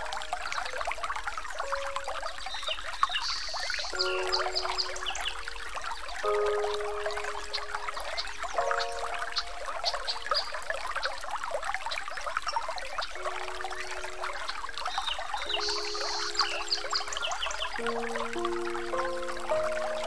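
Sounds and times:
trickling water: 0.0 - 20.0.

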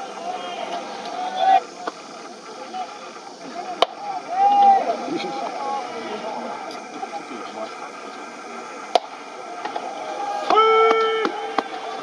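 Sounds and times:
voices calling from stands: 0.0 - 12.0.

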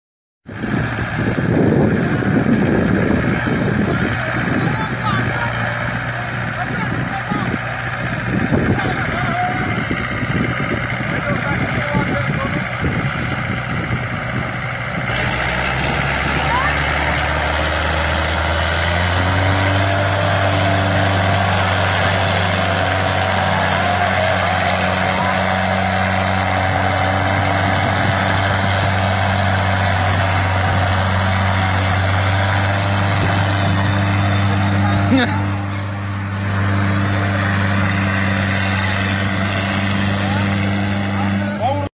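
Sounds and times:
diesel tractor engines under load: 0.5 - 41.9
people's voices: 0.9 - 41.9.

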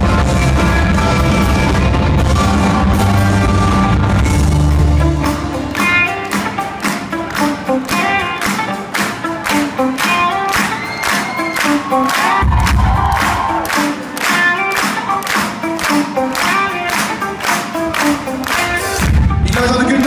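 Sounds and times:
live rock band playing loudly: 0.0 - 20.0.

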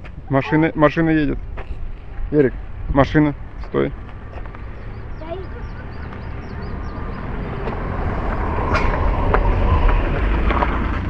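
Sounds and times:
tyres crackling on road: 1.4 - 11.0
car driving past: 2.2 - 11.0.

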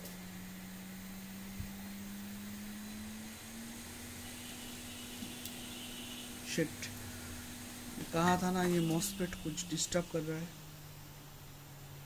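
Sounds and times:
hot-air blower hum and hiss: 0.0 - 12.0.

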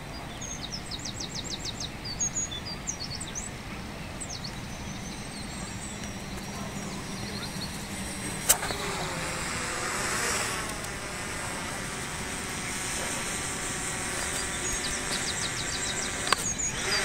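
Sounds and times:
outdoor background noise: 0.0 - 17.0
sharp click: 8.4 - 9.0, 14.2 - 16.6.

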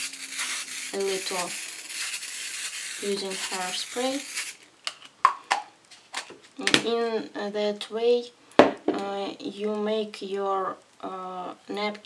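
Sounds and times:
woman speaking: 1.0 - 1.6, 3.0 - 4.3.

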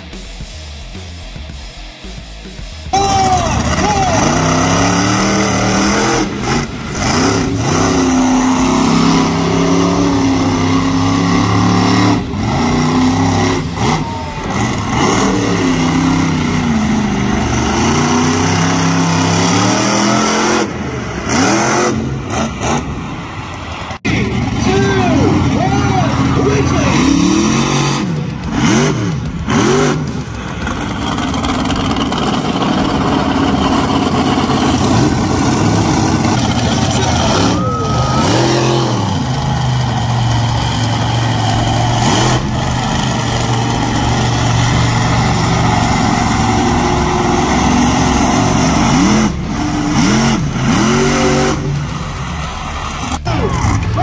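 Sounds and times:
engine throttle blips: 0.0 - 54.0
monster truck engines running: 0.0 - 54.0.

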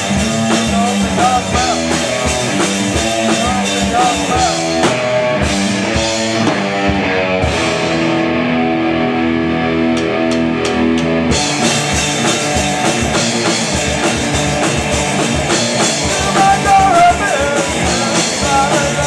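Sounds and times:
distorted electric guitars: 0.0 - 19.0
drum kit: 0.0 - 19.0.

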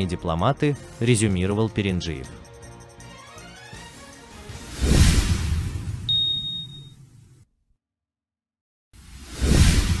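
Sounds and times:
high ringing ping: 6.1 - 7.0.

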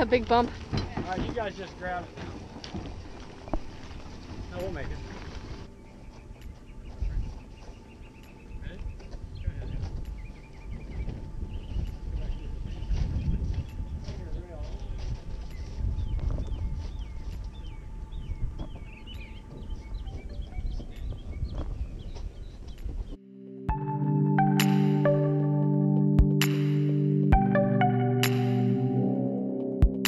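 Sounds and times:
low uneven rumble: 0.0 - 22.4
birds chirping: 0.0 - 23.2.

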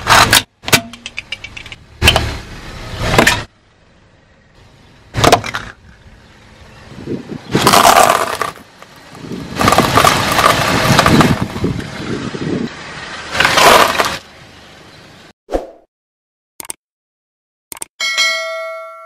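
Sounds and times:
tyre crushing plastic containers: 7.6 - 8.7, 9.6 - 11.6, 13.4 - 14.2.

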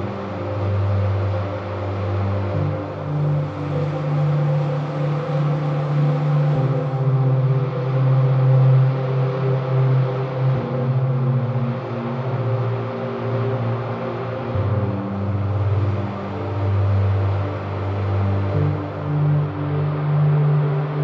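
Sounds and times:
synthwave instrumental music: 0.0 - 21.0.

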